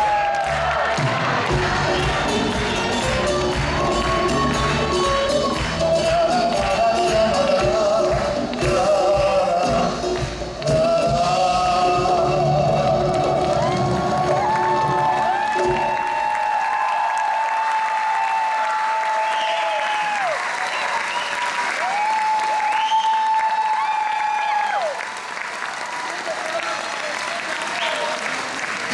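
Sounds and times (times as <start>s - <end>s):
audience applause: 0.0s - 10.9s, 12.7s - 28.9s
live band playing: 0.8s - 16.2s.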